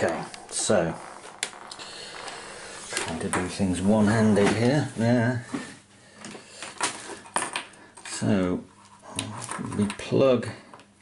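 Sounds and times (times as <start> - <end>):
soft rustle of cables: 0.0 - 7.2.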